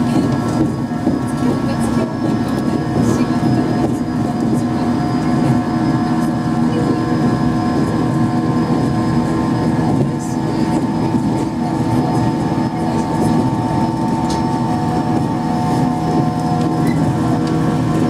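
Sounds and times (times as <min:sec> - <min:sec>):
train traction motor whine: 0:00.0 - 0:18.0
wheels rumbling on rail: 0:00.0 - 0:18.0.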